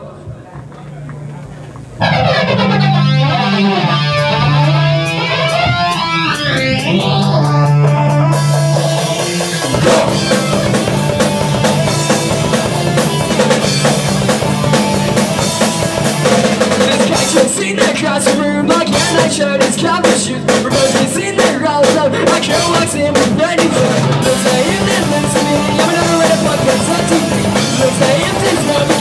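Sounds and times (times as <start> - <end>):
electric guitar with warbling effects: 2.0 - 29.0
rock band playing loudly: 2.0 - 29.0
cymbals and drums: 5.5 - 29.0.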